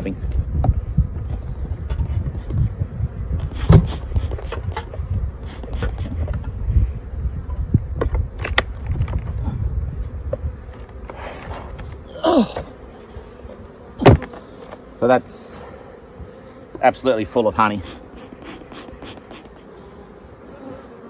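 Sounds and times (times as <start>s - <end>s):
bees buzzing: 0.2s - 21.0s
knocks and scrapes of hive lid: 0.2s - 21.0s.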